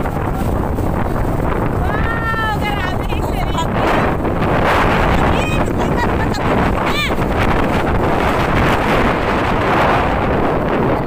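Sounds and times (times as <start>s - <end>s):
storm wind buffeting microphone: 0.0s - 11.0s.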